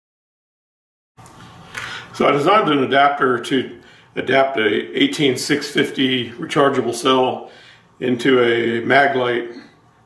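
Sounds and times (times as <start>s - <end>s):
room tone: 1.2s - 10.0s
man talking: 2.0s - 9.8s.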